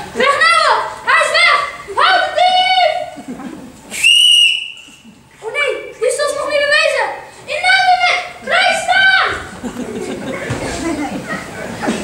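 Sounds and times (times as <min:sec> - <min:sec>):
whistle blast: 0:03.9 - 0:05.0.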